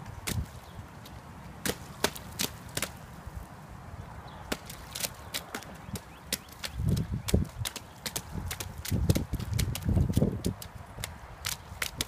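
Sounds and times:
boots splashing in puddle: 0.2 - 3.2, 4.5 - 12.0.

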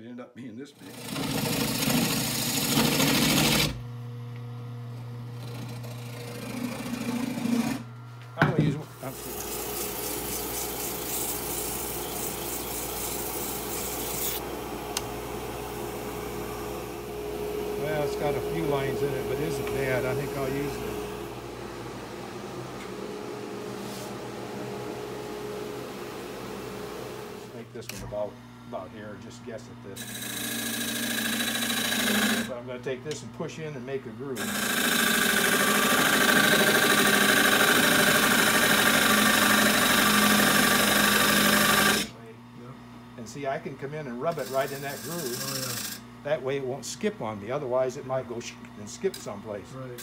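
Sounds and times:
gouge cutting spinning wood: 0.8 - 3.8, 5.4 - 7.9, 8.5 - 21.3, 30.0 - 32.6, 34.4 - 42.1, 44.2 - 46.0
lathe motor humming: 0.9 - 28.9, 29.9 - 32.5, 34.4 - 42.1, 44.3 - 46.1.

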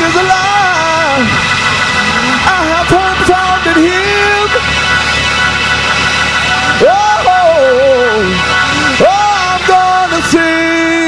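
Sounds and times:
man singing: 0.0 - 1.4, 2.0 - 4.6, 6.7 - 11.0
sustained keyboard chords: 0.0 - 11.0.

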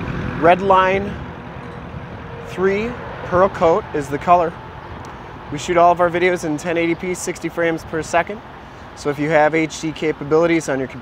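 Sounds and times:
outdoor background noise: 0.0 - 11.0
man speaking: 0.4 - 1.3, 2.4 - 4.6, 5.5 - 8.4, 9.0 - 11.0.

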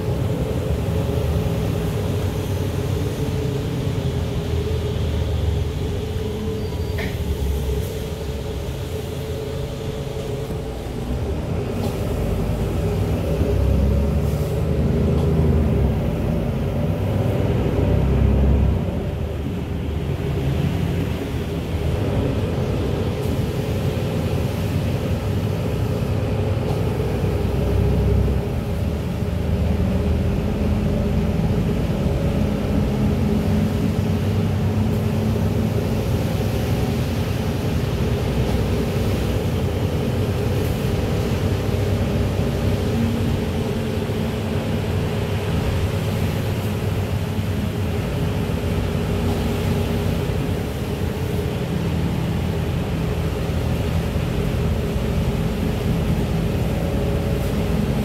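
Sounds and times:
bus running rumble: 0.0 - 58.0
tyres hissing on wet road: 0.0 - 58.0.

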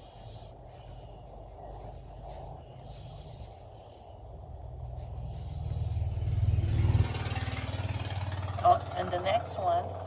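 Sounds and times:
motor running with pulsing rumble: 0.0 - 10.0.

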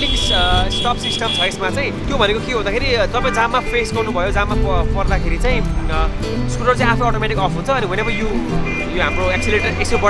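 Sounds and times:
background music: 0.0 - 10.0
man talking: 0.0 - 10.0.

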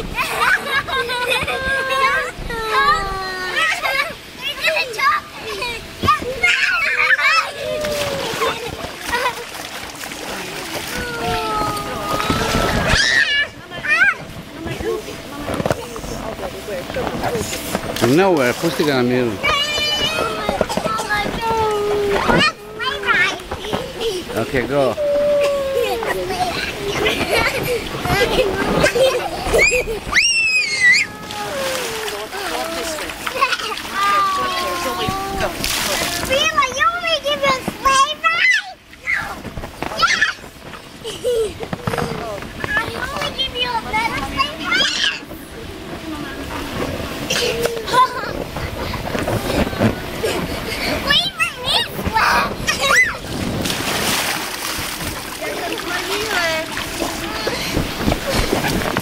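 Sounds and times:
children calling out: 0.0 - 9.5, 10.6 - 14.3, 19.4 - 45.4, 50.1 - 53.4
water splashing: 0.0 - 38.1, 38.9 - 59.0.

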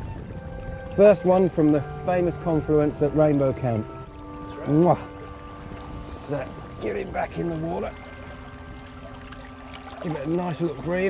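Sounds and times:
river current rushing: 0.0 - 11.0.

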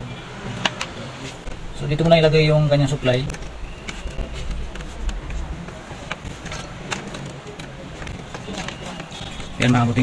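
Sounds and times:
faint background voices: 0.0 - 10.0
wire and connectors clicking: 0.6 - 10.0.

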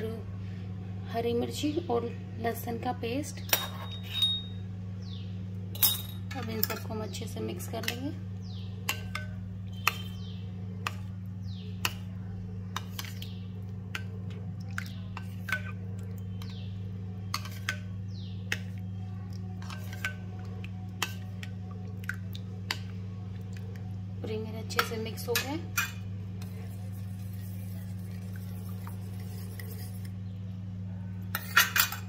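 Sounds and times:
steady low hum: 0.0 - 32.0
spoon clinking against ceramic bowl: 3.5 - 4.6.

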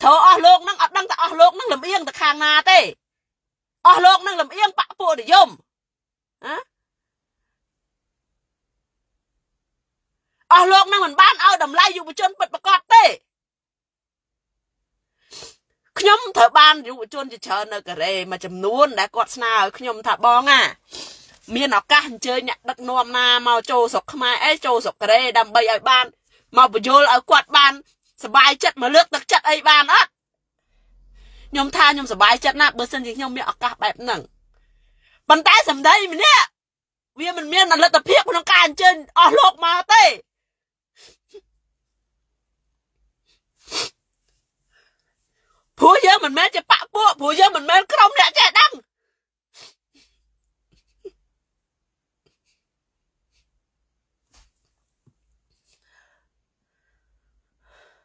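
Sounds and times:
woman speaking: 0.0 - 3.0, 3.8 - 5.6, 6.4 - 6.7, 10.5 - 13.2, 16.0 - 20.8, 21.4 - 30.1, 31.2 - 34.3, 35.3 - 36.5, 37.2 - 40.2, 45.8 - 48.8
woman's sharp burst of breath: 20.8 - 21.4.

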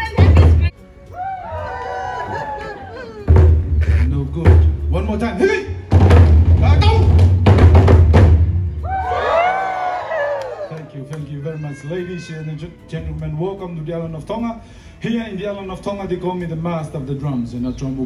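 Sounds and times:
light percussion: 0.0 - 1.7
fast loud drumming: 0.1 - 0.7, 3.3 - 5.2, 5.9 - 8.7
long shouted call: 11.4 - 12.6.

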